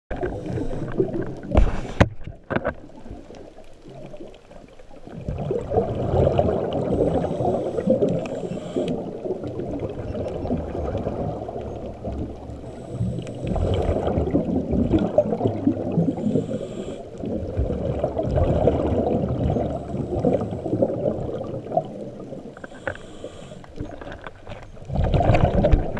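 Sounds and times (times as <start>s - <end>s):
underwater rushing and gurgling: 0.1s - 25.9s.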